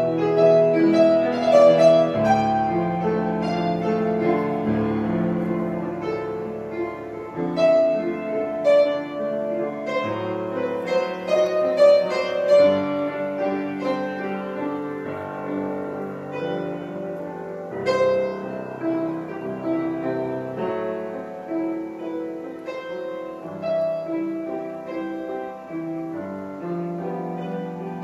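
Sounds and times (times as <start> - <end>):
slow piano music: 0.0 - 28.0.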